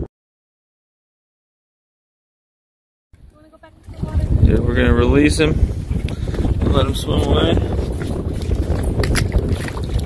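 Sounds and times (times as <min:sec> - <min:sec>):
wind buffeting microphone: 0:03.2 - 0:10.0
short clicks or splashes: 0:08.4 - 0:10.0.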